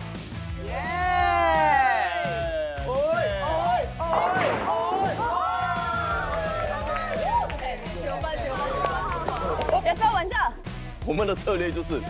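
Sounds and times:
background music: 0.0 - 12.0
people whooping and cheering: 0.6 - 9.8
bowling ball crashing into pins: 4.0 - 5.5.

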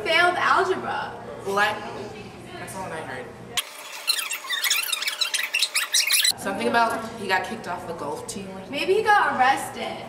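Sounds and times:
high-pitched squeaky chatter: 3.6 - 6.4.

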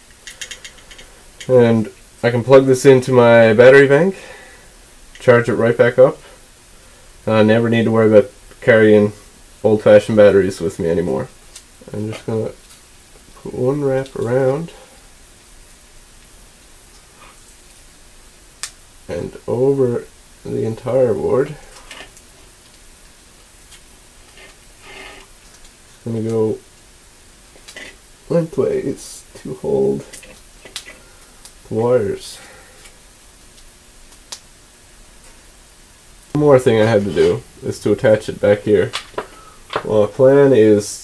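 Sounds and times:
steady low hiss: 0.0 - 41.0.

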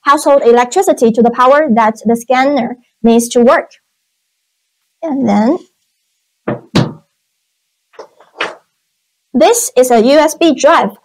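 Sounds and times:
adapter knocking on wooden desk: 6.5 - 7.1.

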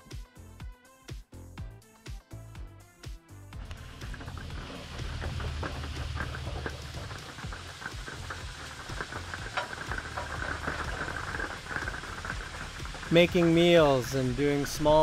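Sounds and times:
utensil clicking and scraping: 3.6 - 14.6
food sizzling in a frying pan: 3.6 - 15.0.

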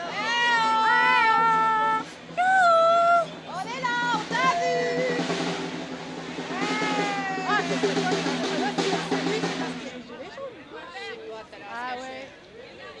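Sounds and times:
crowd noise: 0.0 - 13.0
demonstrators calling and shouting: 0.0 - 13.0.

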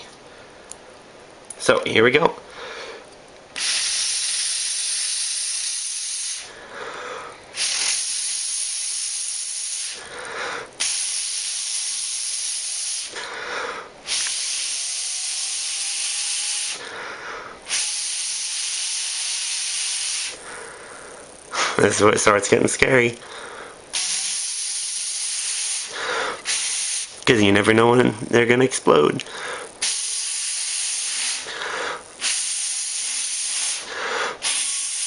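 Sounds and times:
breath hissing through straw: 3.6 - 4.6, 6.2 - 8.4, 31.1 - 32.5, 33.5 - 34.6.

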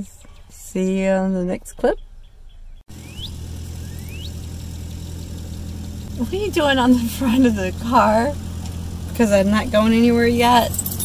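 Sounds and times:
short rising chirps: 2.9 - 5.9
engine idling: 2.9 - 11.0.

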